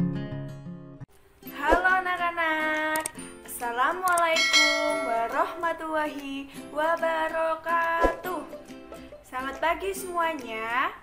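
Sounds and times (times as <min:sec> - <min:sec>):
woman's voice: 0:01.5 - 0:08.5, 0:09.3 - 0:11.0
notification bell ding: 0:04.4 - 0:05.6.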